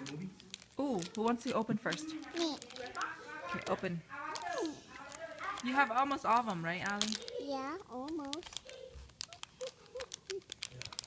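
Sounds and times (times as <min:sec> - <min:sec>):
foil packet crinkling: 0:00.0 - 0:11.0.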